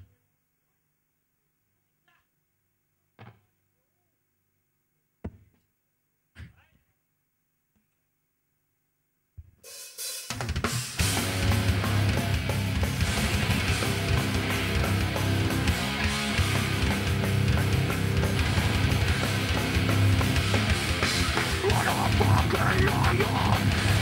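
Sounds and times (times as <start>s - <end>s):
metal band playing live: 11.0s - 24.0s.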